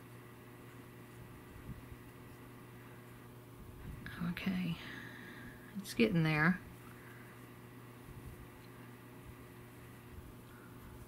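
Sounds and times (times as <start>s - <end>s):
faint steady hum: 0.0s - 11.0s
woman whispering: 4.0s - 4.9s.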